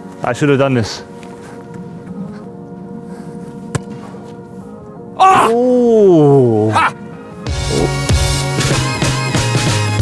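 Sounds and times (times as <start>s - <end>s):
background music held chords: 0.0s - 10.0s.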